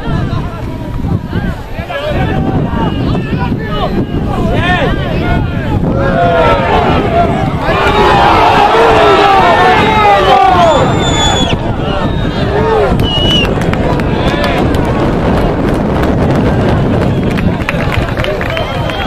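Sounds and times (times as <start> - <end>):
people shouting: 1.8 - 13.0
whistle blast: 10.2 - 13.5.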